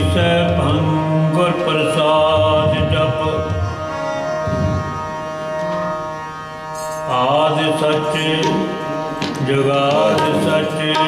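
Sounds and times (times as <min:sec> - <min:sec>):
harmonium chord: 0:00.0 - 0:11.0
person singing: 0:07.1 - 0:11.0.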